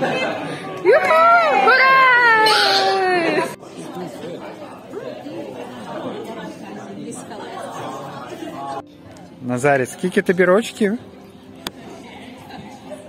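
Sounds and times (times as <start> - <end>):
people chattering quietly: 0.0 - 13.0.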